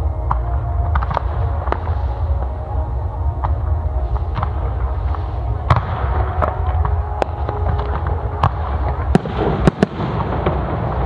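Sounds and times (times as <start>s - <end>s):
steady low rumble: 0.0s - 11.0s
fireworks bursting cracks: 4.2s - 11.0s.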